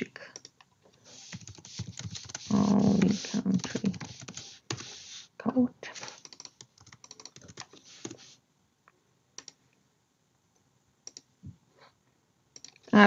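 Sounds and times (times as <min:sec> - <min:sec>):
quiet computer keyboard typing: 0:00.3 - 0:05.1, 0:06.1 - 0:08.3, 0:09.4 - 0:09.6, 0:11.0 - 0:11.3, 0:12.5 - 0:12.9.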